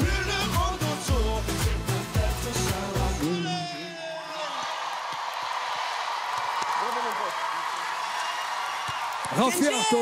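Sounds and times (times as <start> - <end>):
audience applauding and cheering: 2.7 - 10.0.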